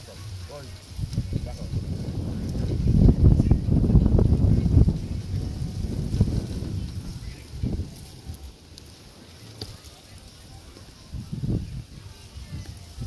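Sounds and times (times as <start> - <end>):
wind buffeting microphone: 0.3 - 8.8, 10.3 - 13.0.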